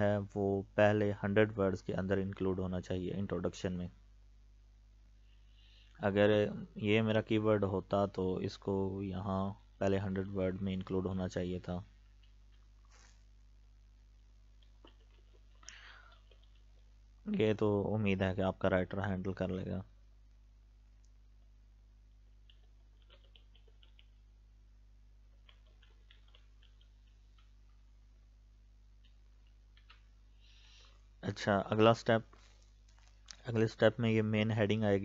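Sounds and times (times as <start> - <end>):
low recording hum: 0.0 - 35.0.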